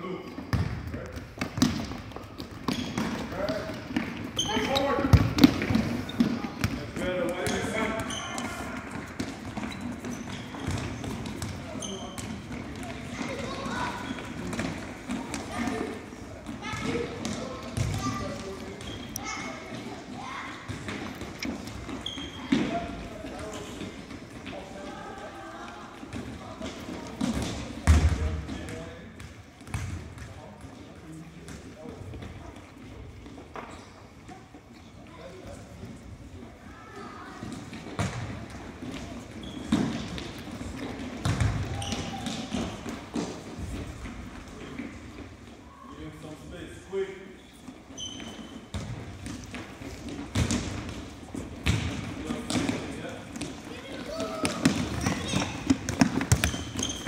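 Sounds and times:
ball bouncing on wooden floor: 37.7 - 44.1, 48.0 - 57.0.

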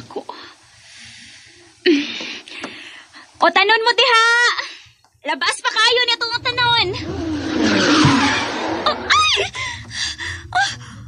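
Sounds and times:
car braking and skidding: 6.8 - 9.6.

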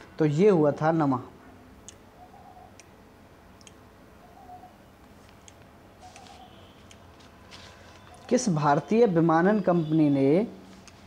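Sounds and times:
computer mouse clicks: 1.8 - 2.0, 3.6 - 3.8, 5.0 - 7.1.

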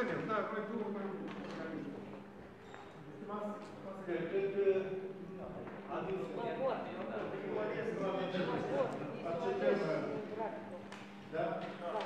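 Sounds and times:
people talking: 0.0 - 2.2, 3.2 - 12.0.

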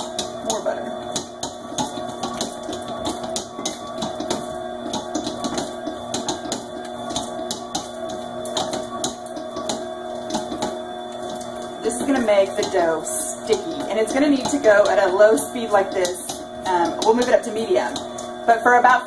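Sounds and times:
stand mixer motor hum: 0.0 - 19.0.

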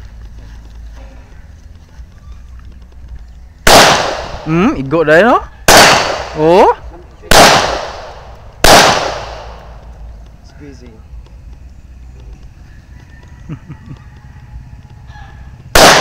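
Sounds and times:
pistol shots: 3.6 - 4.5, 5.7 - 6.7, 7.3 - 9.9, 15.7 - 16.0.

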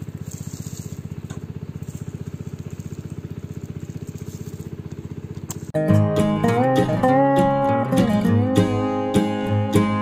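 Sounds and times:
engine putter: 0.0 - 10.0.

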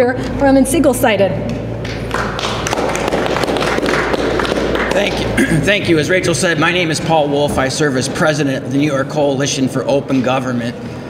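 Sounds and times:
people applauding: 1.8 - 6.2.

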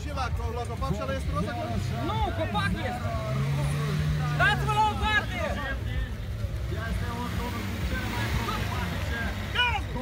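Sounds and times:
car engine running: 0.0 - 10.0
voices calling out: 0.0 - 10.0.

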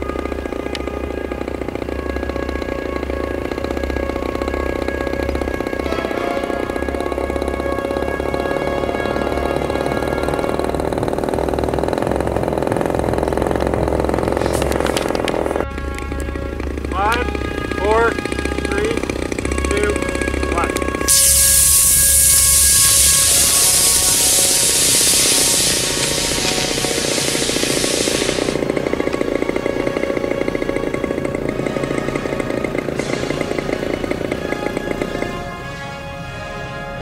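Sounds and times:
rocket motor hissing: 0.0 - 35.2
background music: 5.1 - 11.1, 14.8 - 21.2, 29.0 - 37.0.

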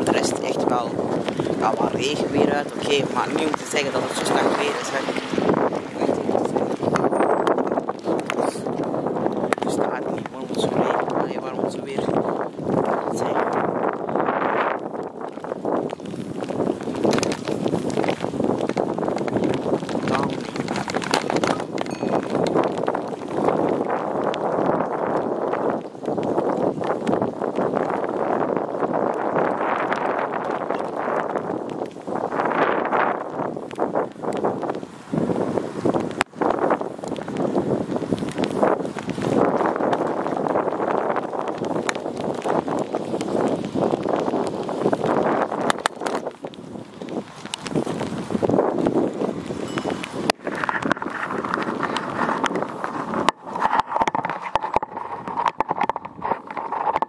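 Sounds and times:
wind buffeting microphone: 0.0 - 57.0
handling rattles and knocks: 16.8 - 24.0, 49.7 - 57.0.

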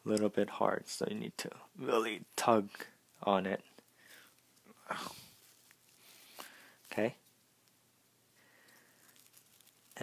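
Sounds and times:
paper rustling and creasing: 4.2 - 7.1, 8.8 - 10.0.

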